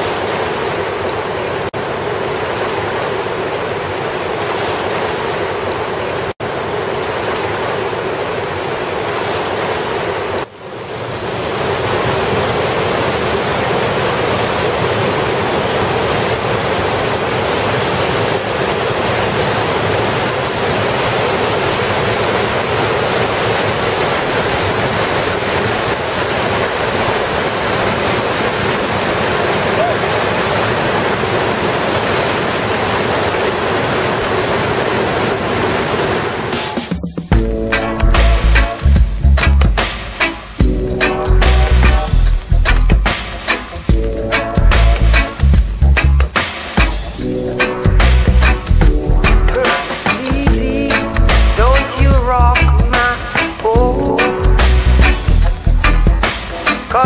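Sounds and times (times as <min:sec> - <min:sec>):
roar of river rapid: 0:00.0 - 0:37.0.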